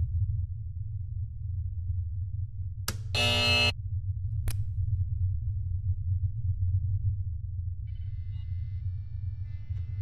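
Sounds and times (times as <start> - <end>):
low electronic hum: 0.0 - 10.0
harsh buzzer tone: 3.2 - 3.7.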